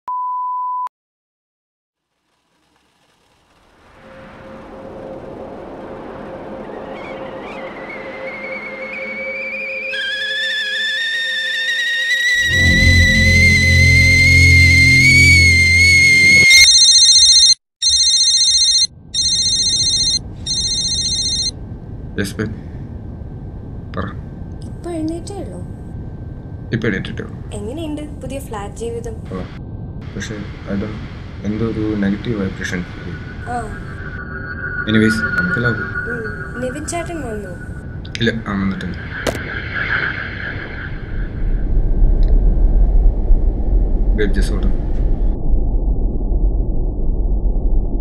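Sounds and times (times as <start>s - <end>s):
rising high whine: 2.0s - 17.4s, 29.2s - 48.0s
deep rumble: 2.1s - 10.1s, 21.5s - 48.0s
film score swell: 2.1s - 16.5s, 21.6s - 48.0s
electronic phone ringtone: 16.6s - 21.6s
steady reference tone: 29.5s - 48.0s.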